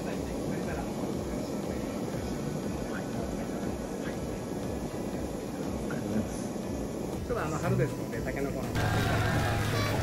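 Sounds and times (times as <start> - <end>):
faint voices: 0.0 - 10.0
gas burner flame rushing: 0.0 - 10.0.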